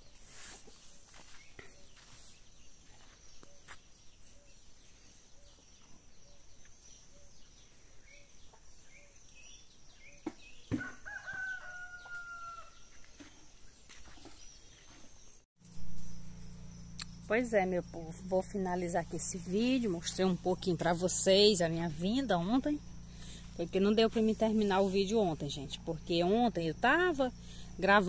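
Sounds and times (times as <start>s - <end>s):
small birds chirping: 0.0s - 15.4s
rooster crowing: 10.8s - 12.9s
low steady hum: 15.6s - 28.0s.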